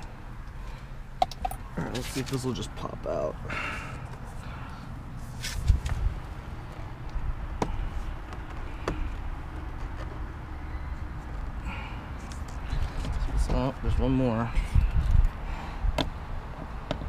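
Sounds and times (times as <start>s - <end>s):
low rumble of handling noise: 0.0s - 17.0s.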